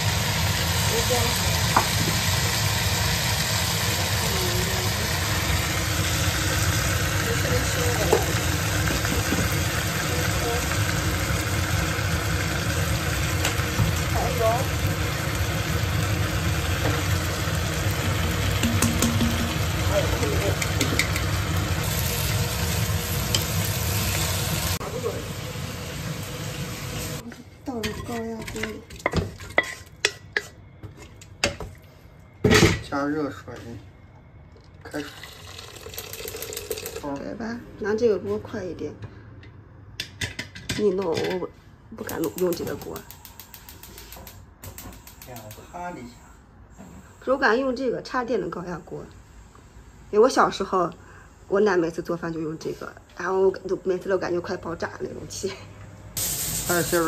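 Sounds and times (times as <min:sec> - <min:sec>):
food sizzling in a wok: 0:00.0 - 0:30.6, 0:35.0 - 0:37.2, 0:56.2 - 0:57.0
knocks and scrapes on metal pot: 0:18.6 - 0:19.6
spatula stirring: 0:27.9 - 0:31.2.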